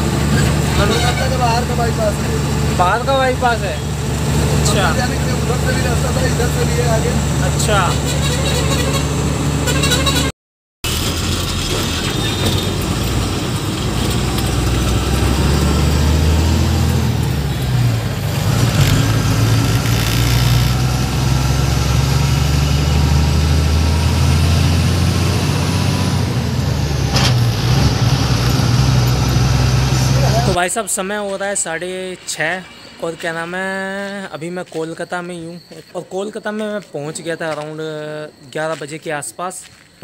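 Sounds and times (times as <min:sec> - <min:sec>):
truck engine drone: 0:00.0 - 0:38.5
road noise: 0:00.0 - 0:40.0.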